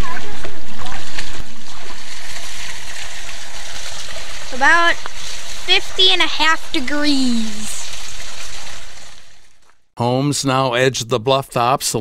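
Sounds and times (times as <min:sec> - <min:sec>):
creek water running: 0:00.0 - 0:09.7.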